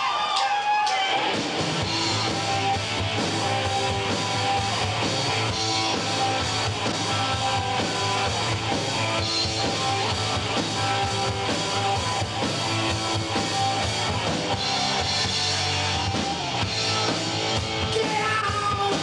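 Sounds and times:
electric guitars: 0.8s - 19.0s
bass guitar: 1.1s - 19.0s
drum kit beat: 1.1s - 19.0s.

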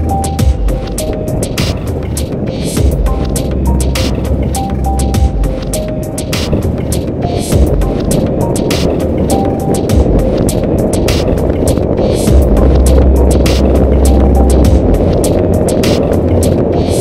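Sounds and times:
background music: 0.0s - 17.0s
motorcycle riding at speed: 0.0s - 17.0s
deep bass note: 2.8s - 5.8s, 12.3s - 17.0s.

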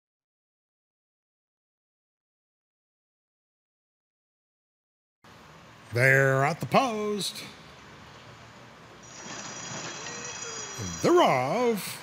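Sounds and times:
low background noise: 5.2s - 12.0s
starting-gate bell ringing: 9.0s - 11.7s.

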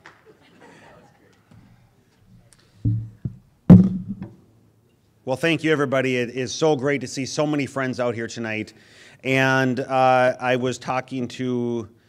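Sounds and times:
microphone handling knocks: 2.8s - 4.4s.

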